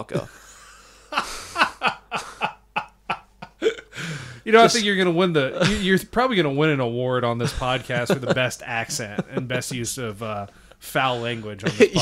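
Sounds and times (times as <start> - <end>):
man laughing in breathy bursts: 0.1 - 4.4.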